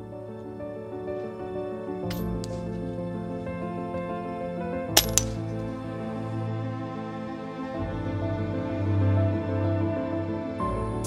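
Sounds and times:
background music: 0:00.0 - 0:11.0
air rifle firing: 0:05.0 - 0:05.5
pellet pinging on steel target: 0:05.0 - 0:05.5.

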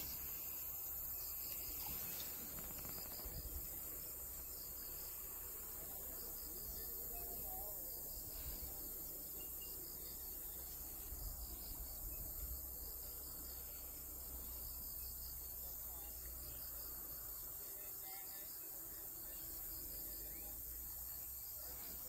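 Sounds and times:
insects chirping and trilling: 0:00.0 - 0:22.0.

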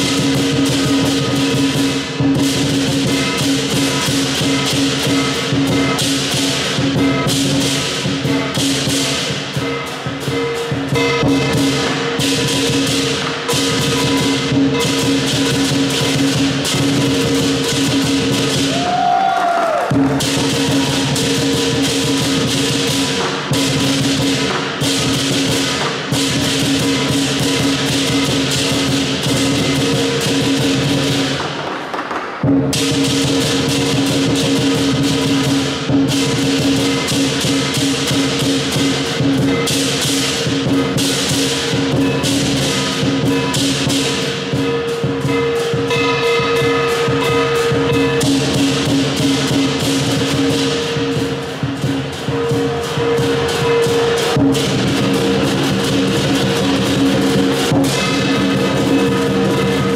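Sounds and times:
gong: 0:00.0 - 0:31.8, 0:32.4 - 0:59.9
cymbals clashing: 0:00.0 - 0:59.9
large drum beating: 0:00.0 - 0:59.9.

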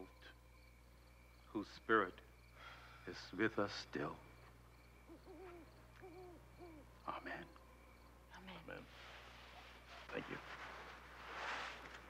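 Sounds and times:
faint owl hooting: 0:04.8 - 0:10.9.

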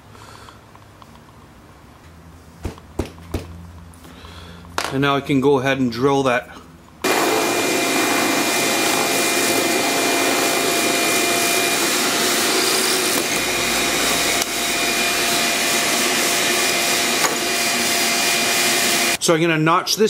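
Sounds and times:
shop vacuum humming: 0:07.0 - 0:19.2
drill press boring wood: 0:07.1 - 0:19.2.

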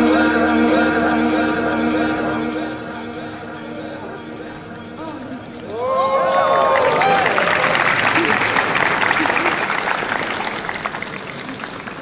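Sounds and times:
crowd clapping: 0:05.6 - 0:12.0.

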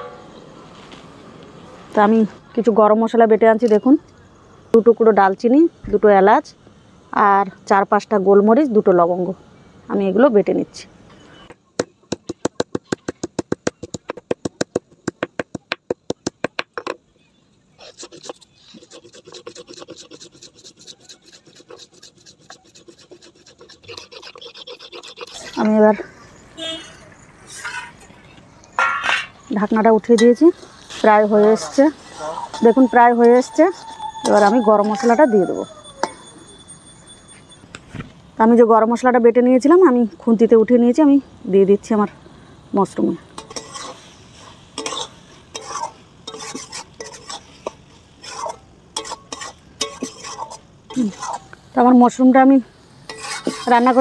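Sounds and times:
stone grinding on stone: 0:17.8 - 0:25.6, 0:44.8 - 0:47.4, 0:48.2 - 0:51.5, 0:53.1 - 0:54.0
metal spatula scraping iron pan: 0:27.5 - 0:28.1, 0:43.4 - 0:51.6, 0:53.0 - 0:54.0
food frying faint sizzle: 0:29.6 - 0:34.2, 0:40.4 - 0:54.0.

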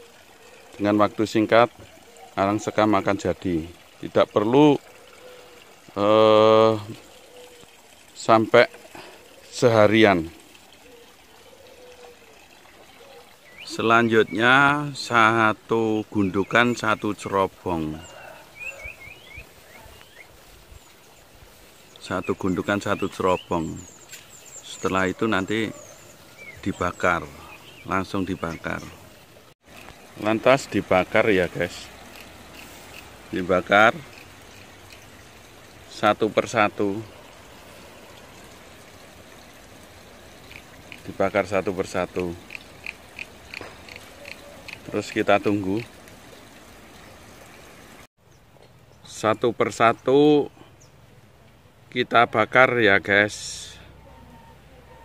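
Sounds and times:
outdoor ambience hiss: 0:00.0 - 0:54.2.

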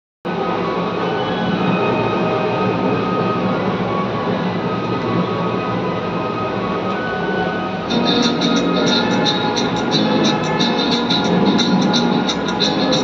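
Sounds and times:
karaoke backing track on loudspeaker: 0:07.9 - 0:13.0.

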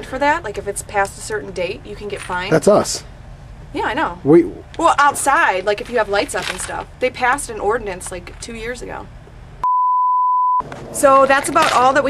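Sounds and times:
censor bleep: 0:09.6 - 0:10.6.

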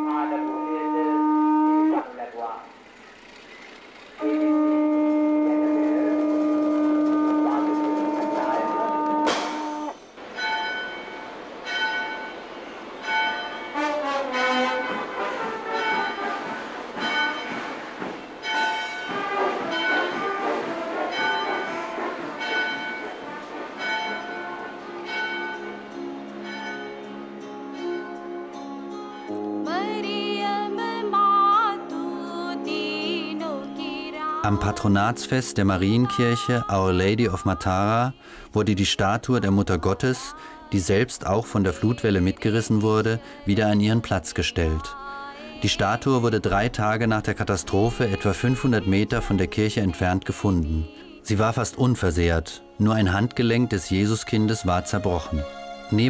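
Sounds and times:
church bells ringing: 0:05.9 - 0:29.4.

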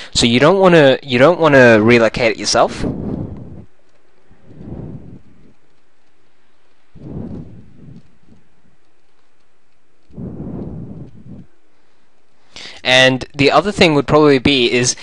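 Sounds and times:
faint steady hiss: 0:00.0 - 0:15.0
soft low rumbles: 0:01.2 - 0:14.6.

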